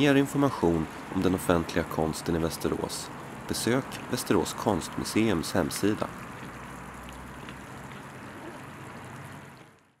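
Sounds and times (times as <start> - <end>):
fountain water splashing: 0.0 - 10.0.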